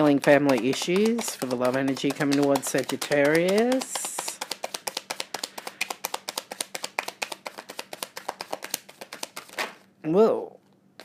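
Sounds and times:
cards being shuffled: 0.0 - 9.8.

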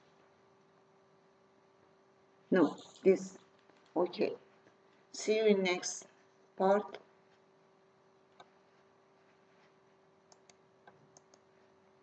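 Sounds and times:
faint steady hum: 0.0 - 12.0
computer mouse clicks: 10.3 - 11.5.

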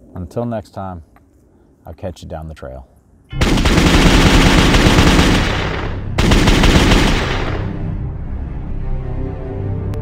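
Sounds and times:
machine-gun fire: 3.3 - 7.9.

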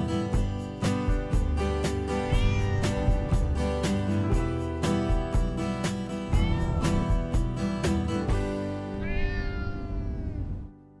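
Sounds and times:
cat meowing: 2.2 - 3.3, 6.3 - 7.3, 8.9 - 10.6.

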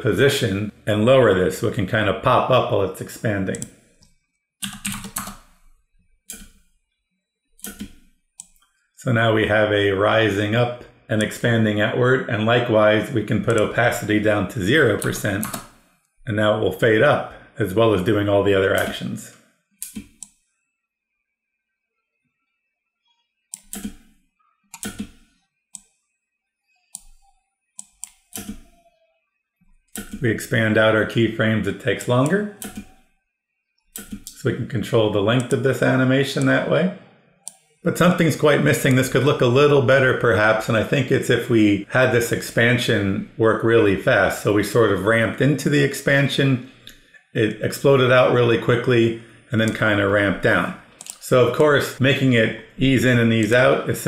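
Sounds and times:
computer keyboard typing: 4.6 - 5.5, 6.3 - 6.6, 7.6 - 8.6, 13.4 - 14.0, 14.8 - 15.8, 23.6 - 24.1, 24.7 - 25.9, 26.9 - 28.9, 29.9 - 30.3, 32.1 - 33.0, 33.9 - 34.4, 51.0 - 51.2.

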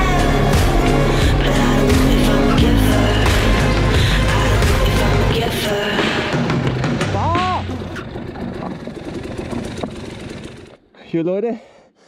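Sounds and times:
motorcycle engine: 0.0 - 11.0.

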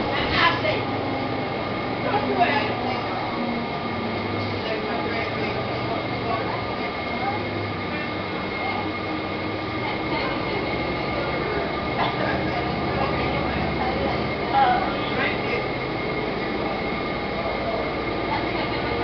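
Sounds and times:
bus engine and road noise: 0.0 - 19.0.

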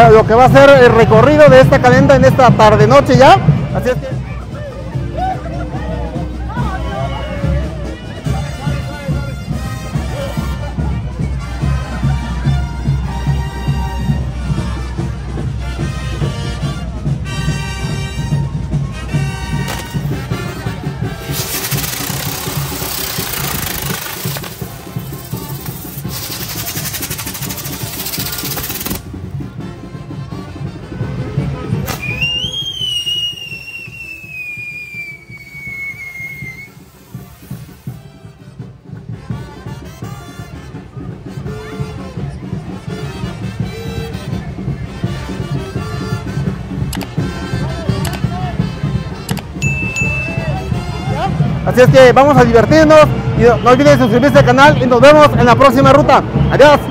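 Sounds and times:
music with steady beat: 1.2 - 35.6, 36.4 - 54.0
firework crack: 19.6 - 20.3, 21.1 - 29.2, 31.8 - 38.0
falling firework whistle: 21.2 - 24.5, 31.8 - 37.9
fireworks hissing: 21.2 - 29.2, 31.9 - 38.2.

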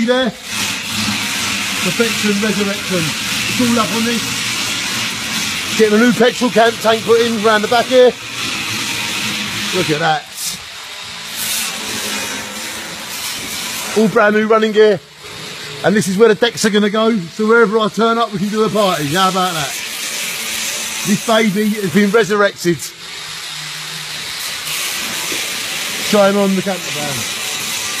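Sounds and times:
steady hissing noise: 18.2 - 28.0
steady hiss: 24.0 - 28.0.

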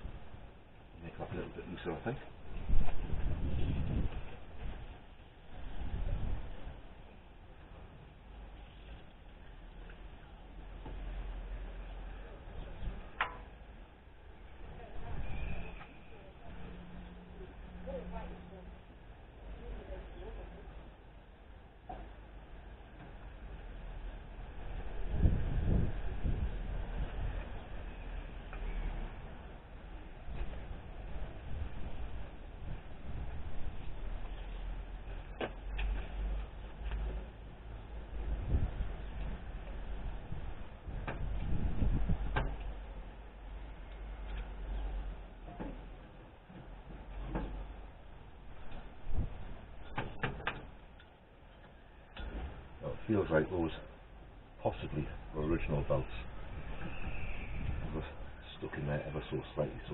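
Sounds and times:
low rumbles: 0.0 - 59.9
sharp clicks and knocks: 13.2 - 13.6, 49.8 - 52.6.

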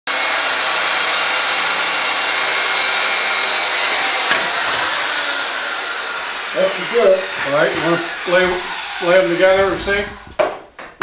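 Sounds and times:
circular saw cutting wood: 0.1 - 10.6.

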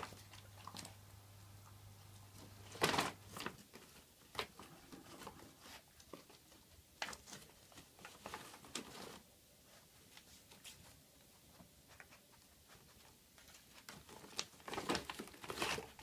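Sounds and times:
plastic bag crinkling: 13.8 - 16.0.

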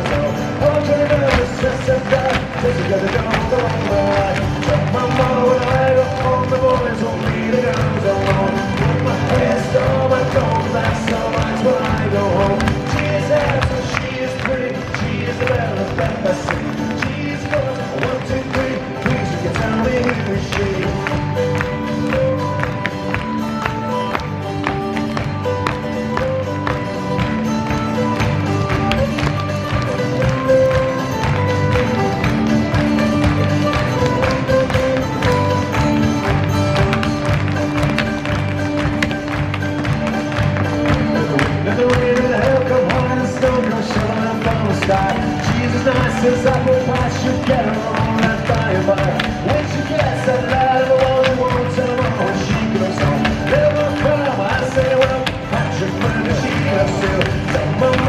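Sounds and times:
hard shoes tapping on stage: 0.0 - 58.0
lively dance tune: 0.0 - 58.0.

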